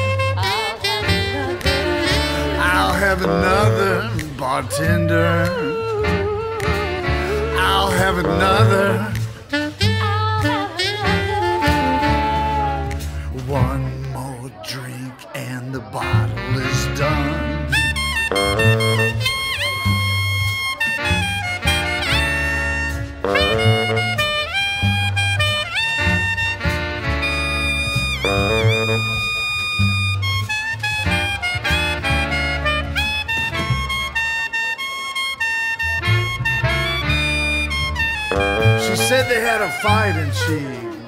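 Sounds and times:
saxophone riffs: 0:00.0 - 0:13.7, 0:16.0 - 0:41.0
upright bass: 0:00.0 - 0:34.5, 0:35.7 - 0:41.0.

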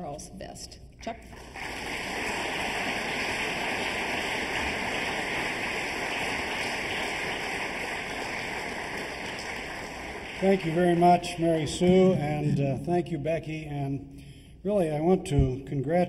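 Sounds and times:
audience applauding: 0:01.3 - 0:12.7.

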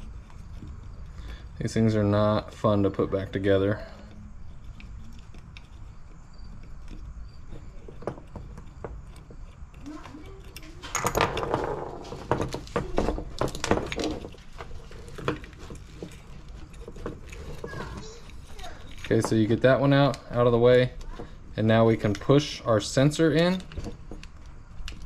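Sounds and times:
small parts clicking and rattling: 0:00.0 - 0:25.0.

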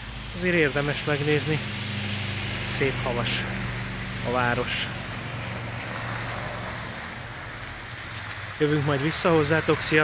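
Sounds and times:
road or wind hiss: 0:00.0 - 0:10.0
vehicle engine humming: 0:00.0 - 0:10.0.

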